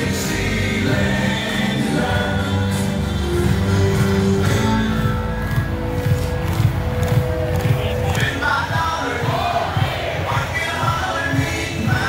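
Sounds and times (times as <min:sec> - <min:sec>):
crowd singing along: 0:00.0 - 0:05.4, 0:07.8 - 0:12.0
music playing in stadium: 0:00.0 - 0:12.0.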